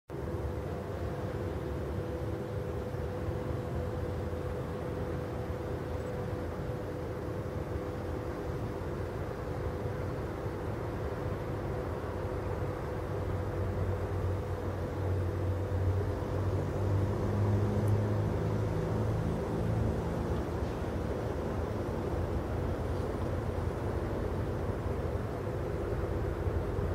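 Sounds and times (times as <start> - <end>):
diesel railcar engine drone: 0.1 - 26.9
steady hum: 0.1 - 26.9.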